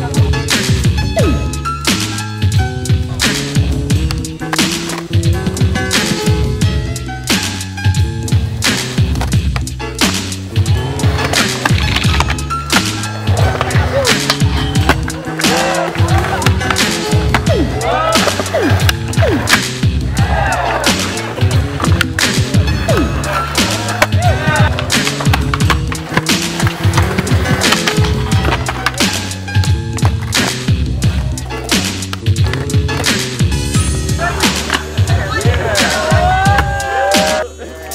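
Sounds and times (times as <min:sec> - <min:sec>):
skateboard wheels rolling on concrete: 0:01.7 - 0:37.4
skateboards popping and landing: 0:03.0 - 0:37.4
music with repeating bass line: 0:12.4 - 0:28.8.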